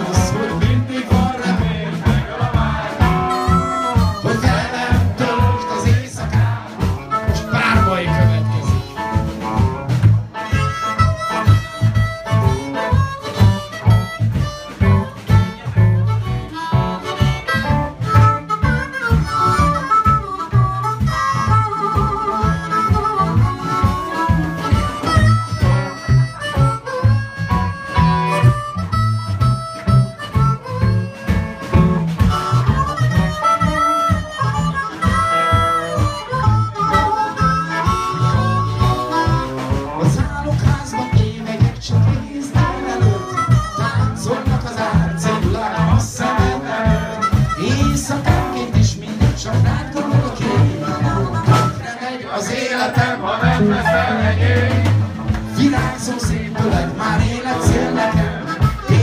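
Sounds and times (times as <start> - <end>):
electric guitar: 0.0 - 51.9, 53.4 - 59.0
bass guitar: 0.0 - 59.0
drum kit beat: 0.0 - 59.0
harmonica: 0.0 - 59.0.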